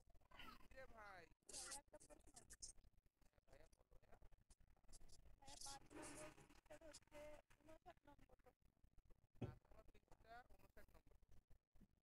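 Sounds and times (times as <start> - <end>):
faint speech over video call: 0.1 - 8.8, 9.4 - 11.5.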